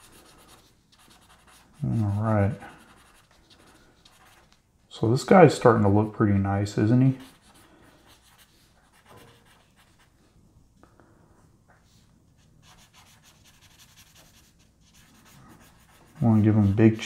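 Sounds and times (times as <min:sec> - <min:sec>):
scratchy rubbing on paper: 0:00.0 - 0:04.5, 0:07.1 - 0:10.1, 0:12.3 - 0:17.0.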